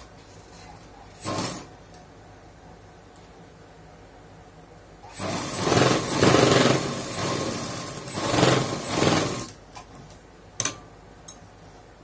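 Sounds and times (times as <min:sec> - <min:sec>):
sewing machine stitching: 0:01.2 - 0:01.7, 0:05.1 - 0:09.6.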